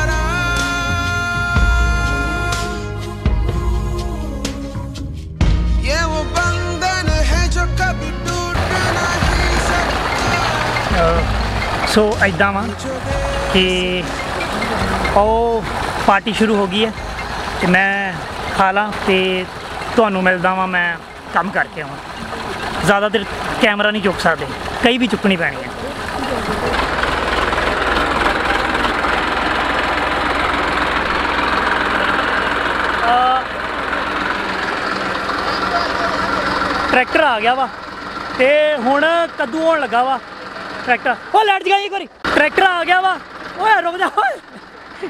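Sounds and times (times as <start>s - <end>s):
engine idling: 0.0s - 5.0s, 5.8s - 45.0s
music playing: 0.0s - 16.9s.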